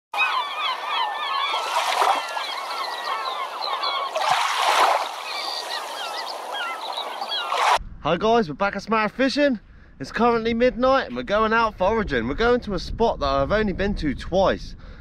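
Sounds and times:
birds chirping: 0.1s - 7.8s.

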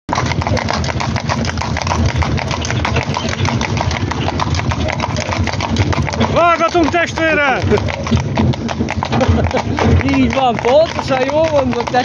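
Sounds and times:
cart wheels rumbling on asphalt: 0.1s - 12.0s
hooves clopping: 0.1s - 12.0s.

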